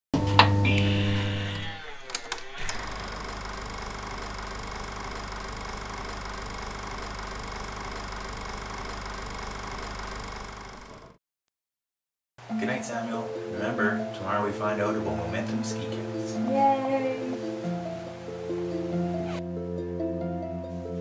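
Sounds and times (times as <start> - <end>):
projector whirr and clatter: 0.3 - 11.2
projector clicks: 1.6 - 11.1.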